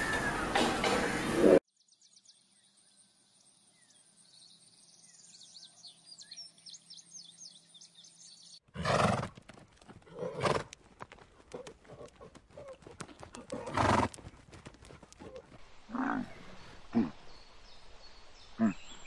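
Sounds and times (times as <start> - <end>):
zebras braying: 10.0 - 16.4.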